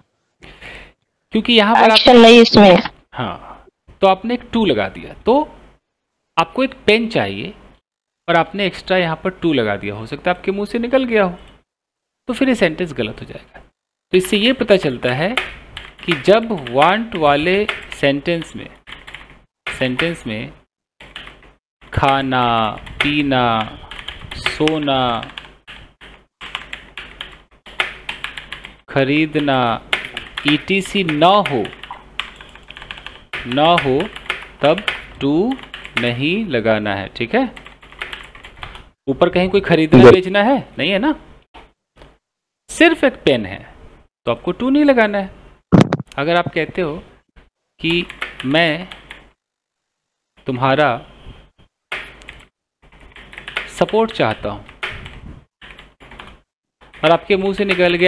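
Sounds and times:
computer keyboard typing: 0:15.3 - 0:20.2, 0:21.0 - 0:21.4, 0:22.1 - 0:28.8, 0:29.4 - 0:36.1, 0:37.5 - 0:38.8, 0:47.9 - 0:49.2, 0:51.9 - 0:58.0.

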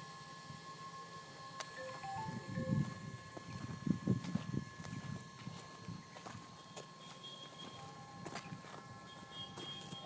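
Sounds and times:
faint high-pitched tones: 0:01.8 - 0:03.2
footsteps on sandy ground: 0:02.2 - 0:10.0.

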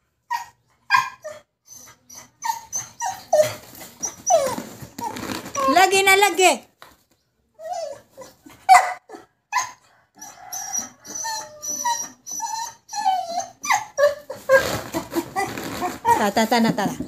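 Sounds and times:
dog whining and yipping: 0:00.3 - 0:06.0, 0:07.6 - 0:16.4.

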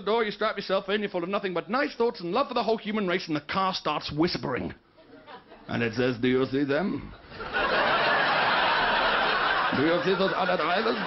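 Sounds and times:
comedian talking: 0:05.6 - 0:07.2, 0:09.5 - 0:11.0
audience laughing: 0:07.2 - 0:11.0.

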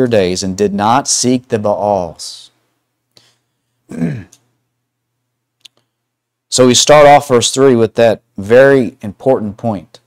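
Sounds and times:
man's low vocal sound: 0:03.9 - 0:04.4.

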